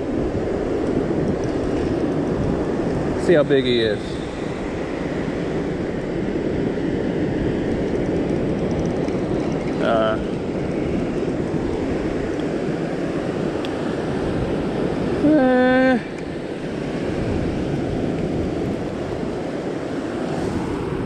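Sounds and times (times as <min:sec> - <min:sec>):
ocean surf: 0:00.0 - 0:21.0
wind: 0:00.0 - 0:21.0.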